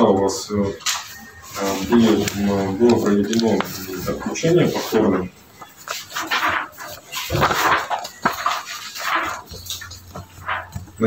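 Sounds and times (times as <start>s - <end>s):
paper rustling: 0.7s - 11.0s.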